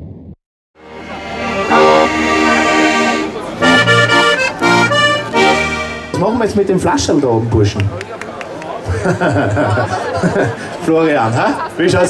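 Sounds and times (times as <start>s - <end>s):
button accordion playing chords: 0.8s - 6.2s.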